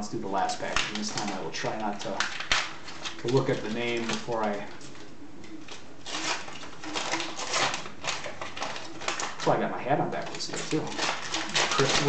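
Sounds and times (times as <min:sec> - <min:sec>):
card pack wrapper crinkling and tearing: 0:00.3 - 0:12.0.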